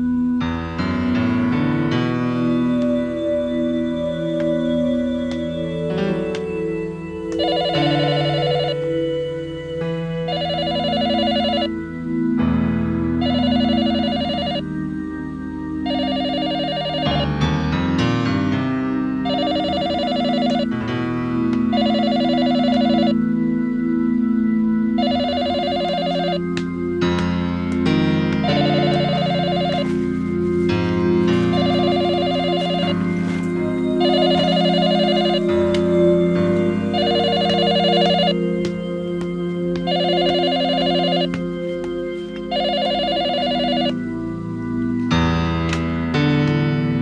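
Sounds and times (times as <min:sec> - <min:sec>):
background music with held chords: 0:00.0 - 0:47.0
telephone ringing electronic trill: 0:07.4 - 0:09.0, 0:10.3 - 0:11.8, 0:13.2 - 0:14.6, 0:15.8 - 0:17.3, 0:19.2 - 0:20.7, 0:21.7 - 0:23.2, 0:25.0 - 0:26.4, 0:28.4 - 0:29.9, 0:31.5 - 0:33.0, 0:34.0 - 0:35.6, 0:36.9 - 0:38.4, 0:39.9 - 0:41.4, 0:42.5 - 0:44.0.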